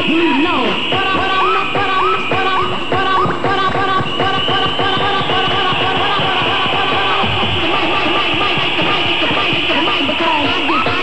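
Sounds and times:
vinyl record scratching: 0:00.0 - 0:11.0.

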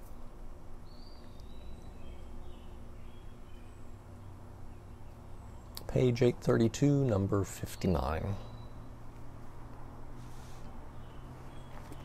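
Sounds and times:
steady low hum: 0:00.0 - 0:12.0
faint high chirp: 0:00.8 - 0:04.0, 0:07.8 - 0:08.9.

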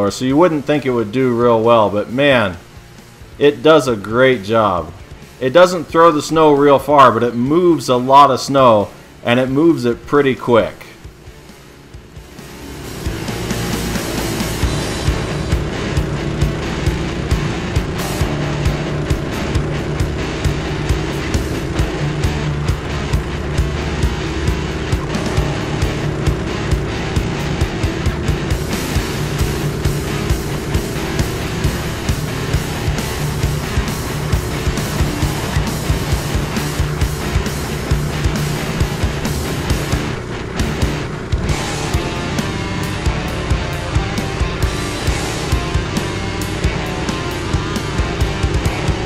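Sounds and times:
snowblower engine running: 0:00.0 - 0:49.0
background music with beat: 0:04.9 - 0:06.0, 0:10.9 - 0:49.0.

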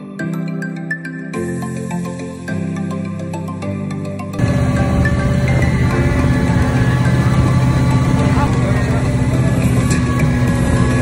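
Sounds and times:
boat engine running: 0:04.4 - 0:11.0
rushing water noise: 0:04.4 - 0:11.0.

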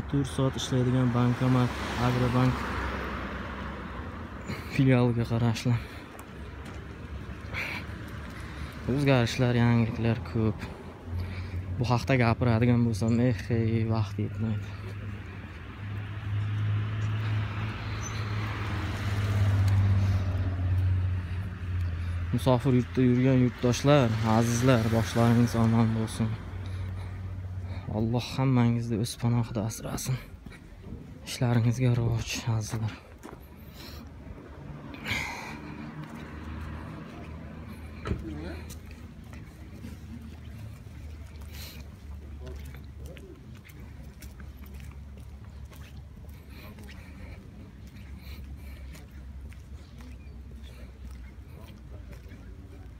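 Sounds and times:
car driving by: 0:33.4 - 0:50.8.

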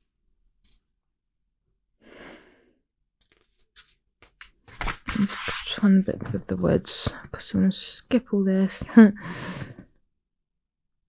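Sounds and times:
woman speaking: 0:05.1 - 0:09.2.

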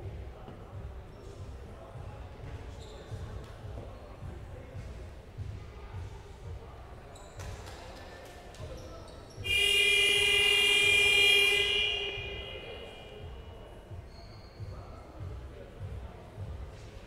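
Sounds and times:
scoreboard horn buzzing: 0:09.4 - 0:13.3.

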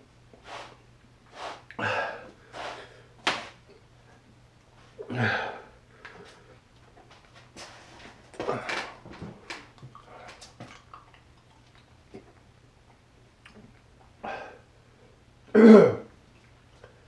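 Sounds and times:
man breathing hard: 0:01.5 - 0:03.2.

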